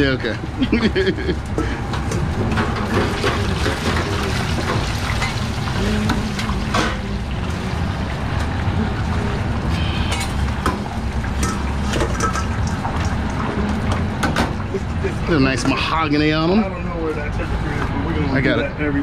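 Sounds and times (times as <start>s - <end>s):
fryer oil bubbling and sizzling: 0.0s - 18.6s
low machine hum: 0.0s - 19.0s.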